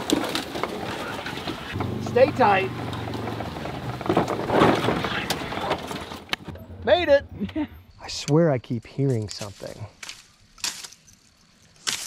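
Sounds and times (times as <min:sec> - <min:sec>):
rattling and brush scraping: 0:00.0 - 0:06.5
low engine hum: 0:01.7 - 0:07.9.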